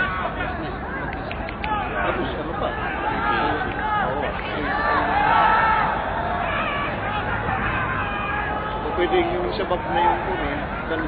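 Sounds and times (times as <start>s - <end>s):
murmur of football crowd: 0.0s - 11.0s
people talking over one another: 0.0s - 11.0s.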